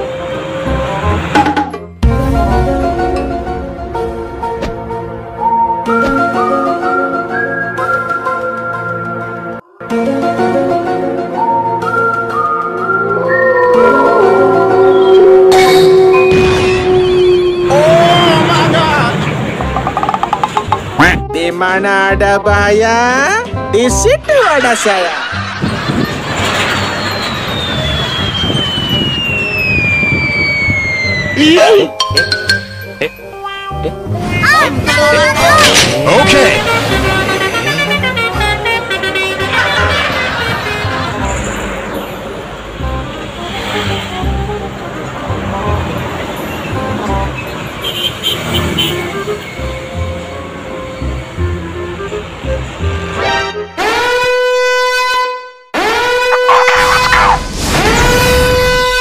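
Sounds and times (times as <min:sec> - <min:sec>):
road traffic rumble: 0:00.0 - 0:07.3, 0:10.9 - 0:21.3, 0:24.5 - 0:31.4, 0:32.2 - 0:54.5
background music: 0:00.0 - 0:26.1, 0:31.4 - 0:47.8, 0:48.8 - 0:55.4
falling whistle sound effect: 0:05.4 - 0:08.8, 0:11.4 - 0:17.8, 0:26.5 - 0:31.4, 0:55.9 - 0:59.0
truck air horn blasts: 0:13.5 - 0:17.7, 0:36.4 - 0:39.9, 0:47.8 - 0:49.3, 0:52.9 - 0:57.2, 0:57.9 - 0:59.0.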